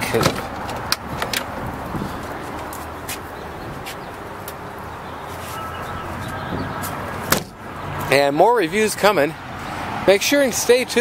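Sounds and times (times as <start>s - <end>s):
vehicle engine idling: 0.0s - 10.8s.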